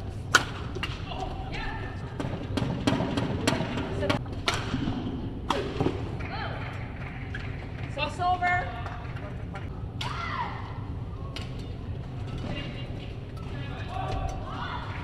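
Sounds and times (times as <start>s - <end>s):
voices in a hall: 0.9s - 15.0s.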